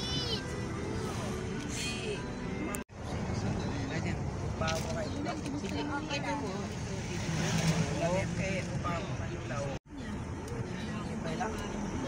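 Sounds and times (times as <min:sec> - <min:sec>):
vehicle engine hum and road noise: 0:00.0 - 0:12.0.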